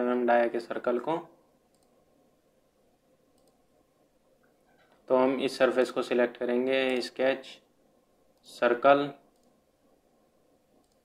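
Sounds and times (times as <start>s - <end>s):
computer mouse clicks: 1.7s - 2.0s, 3.3s - 3.6s, 9.3s - 9.6s, 10.8s - 11.0s.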